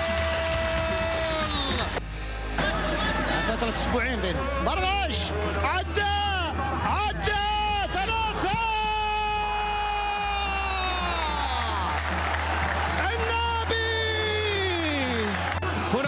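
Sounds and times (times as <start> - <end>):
background music: 0.0 - 16.0
crowd noise: 0.0 - 16.0.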